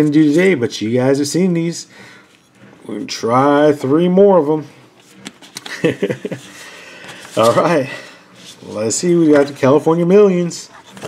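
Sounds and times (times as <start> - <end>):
paper tickets rustling: 5.0 - 11.0
man chuckling: 5.6 - 6.8.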